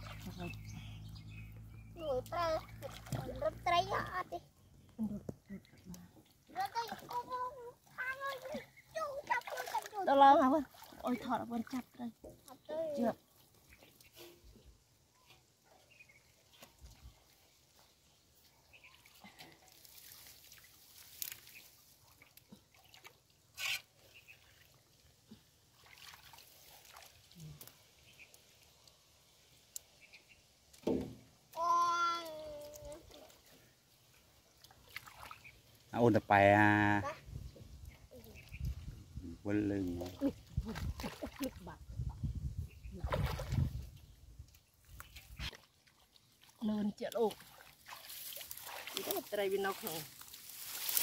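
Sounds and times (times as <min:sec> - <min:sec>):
muddy water dripping and sloshing: 0:00.0 - 0:51.0
hands splashing in muddy water: 0:09.2 - 0:11.8, 0:25.7 - 0:27.8, 0:34.6 - 0:35.5, 0:39.9 - 0:41.6, 0:42.9 - 0:43.9, 0:47.2 - 0:51.0.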